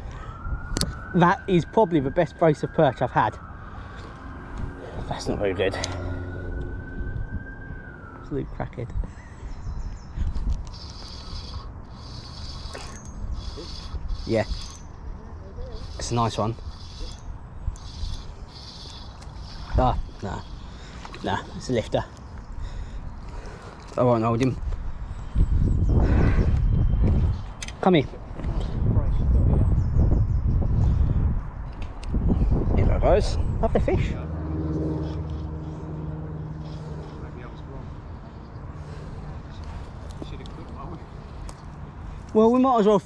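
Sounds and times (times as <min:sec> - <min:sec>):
wind buffeting microphone: 0:00.0 - 0:01.8, 0:03.4 - 0:35.7
fishing reel gears whirring: 0:10.6 - 0:14.9, 0:15.7 - 0:20.4.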